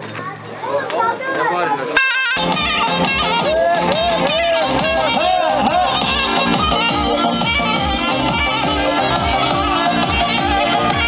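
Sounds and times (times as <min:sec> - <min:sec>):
people talking and calling out: 0:00.0 - 0:11.0
children shouting: 0:00.2 - 0:11.0.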